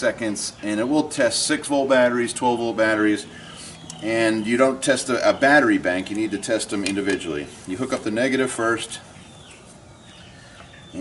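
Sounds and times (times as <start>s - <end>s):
distant bird chirps: 0.4s - 11.0s.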